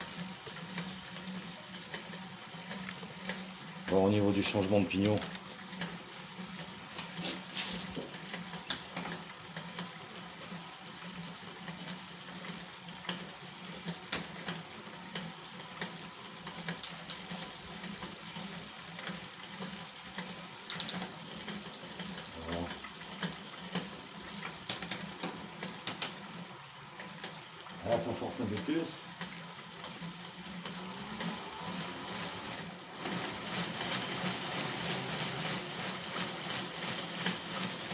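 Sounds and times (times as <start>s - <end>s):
bicycle chain rattling: 0.1s - 27.2s.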